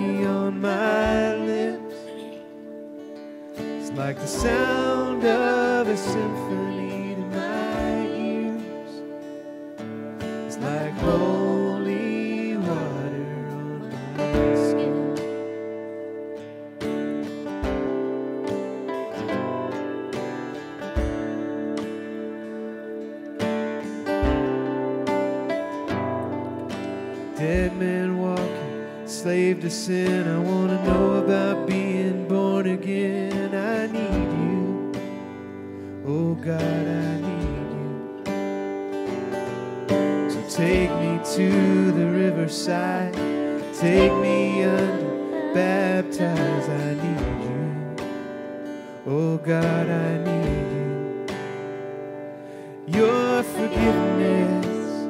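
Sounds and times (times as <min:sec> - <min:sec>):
person singing: 0:00.0 - 0:02.8, 0:03.7 - 0:16.2, 0:27.2 - 0:38.3, 0:40.2 - 0:51.4, 0:52.7 - 0:55.0
strummed acoustic guitar: 0:00.0 - 0:55.0.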